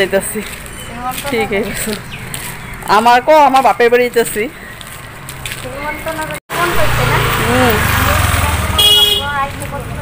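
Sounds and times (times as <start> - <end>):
vehicle engine rumbling: 0.0 - 10.0
voices: 0.0 - 10.0
high-pitched horn toot: 8.7 - 9.4.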